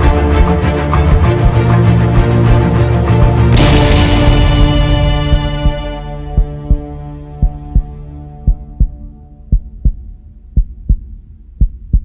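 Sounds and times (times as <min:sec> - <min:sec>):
sustained music chord: 0:00.0 - 0:09.5
heartbeat double thump: 0:03.6 - 0:10.0, 0:10.6 - 0:12.0.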